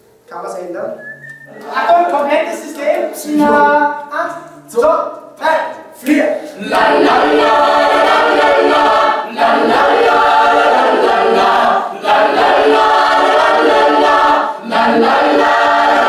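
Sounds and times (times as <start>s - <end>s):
mixed choir singing: 6.6s - 16.0s.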